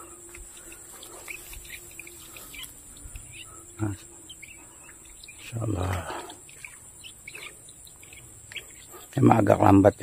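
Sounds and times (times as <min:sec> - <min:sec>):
birds chirping: 0:00.0 - 0:10.0
faint steady hum: 0:00.0 - 0:10.0.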